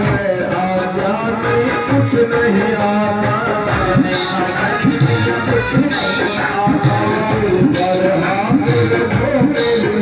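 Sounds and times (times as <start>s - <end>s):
dholak drum: 0.0s - 10.0s
electronic keyboard melody: 0.0s - 10.0s.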